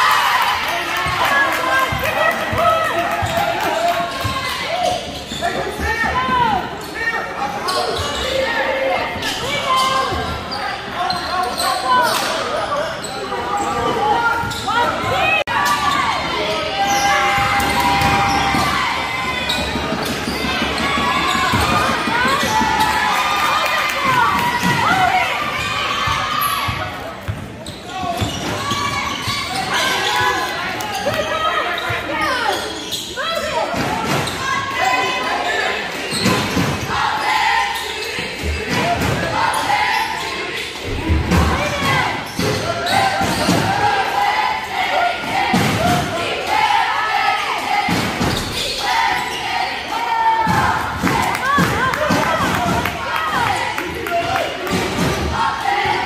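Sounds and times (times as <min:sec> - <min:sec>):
spectators' voices: 0:00.0 - 0:56.0
sneakers squeaking: 0:01.0 - 0:46.6, 0:48.1 - 0:54.8.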